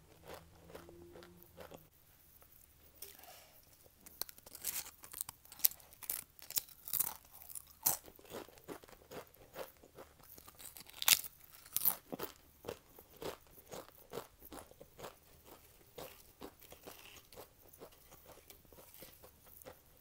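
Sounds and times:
crackly chewing: 0.1 - 2.6, 3.7 - 20.0
crisp potato chip crunches: 4.0 - 17.5.

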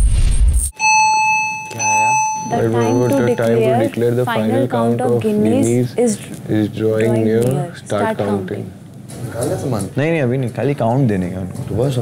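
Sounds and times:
high electronic beep tone: 0.7 - 3.9.

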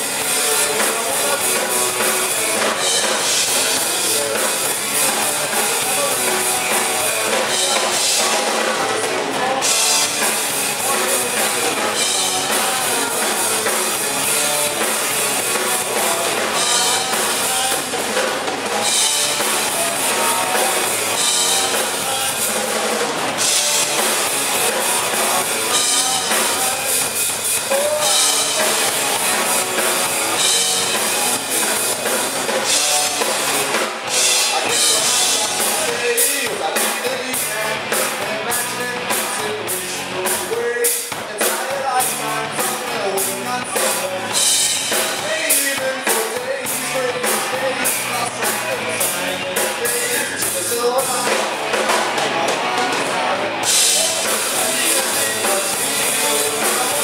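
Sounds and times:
drum kit: 0.0 - 57.0
live rock band playing: 0.0 - 57.0.

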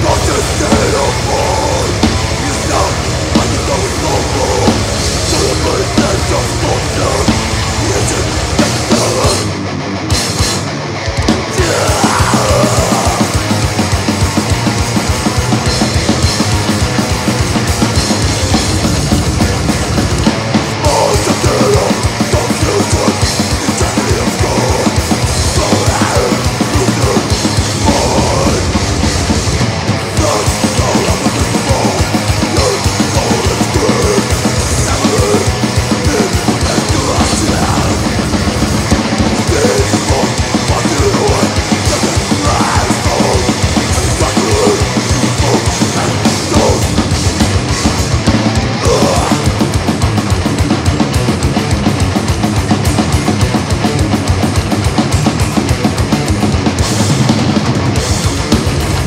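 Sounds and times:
death metal band playing live: 0.0 - 59.0
distorted electric guitars: 0.0 - 59.0
fast bass drum strokes: 0.0 - 59.0.

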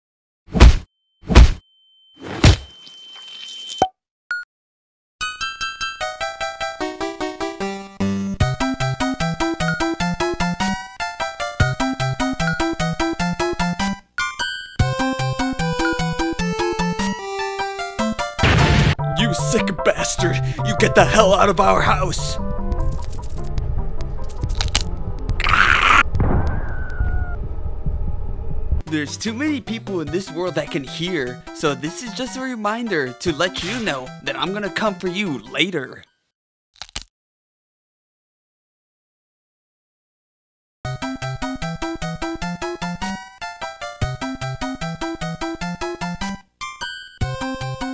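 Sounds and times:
low rumbling crash: 26.0 - 28.8
sharp short impact: 33.6 - 34.0.

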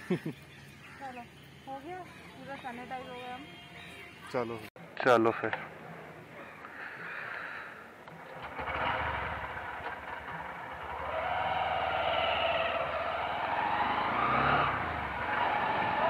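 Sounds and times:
road and wind noise: 7.1 - 16.0
motorcycle engine accelerating: 8.1 - 16.0.

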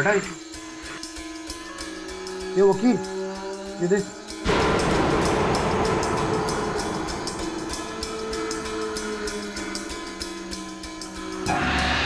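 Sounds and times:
dramatic score stinger: 4.4 - 12.0.

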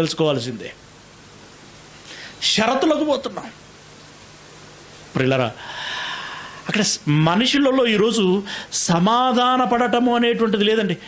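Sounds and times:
man speaking into a microphone: 0.0 - 0.8, 2.4 - 3.6, 6.7 - 11.0
faint steady hiss: 0.0 - 11.0.

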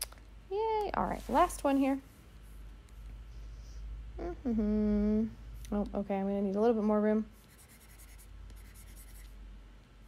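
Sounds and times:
low steady hum: 0.0 - 10.0
stylus scratching on drawing tablet: 7.3 - 9.4.

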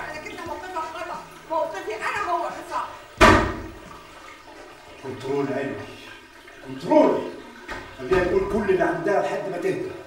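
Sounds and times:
water splashing in sink: 0.0 - 10.0.

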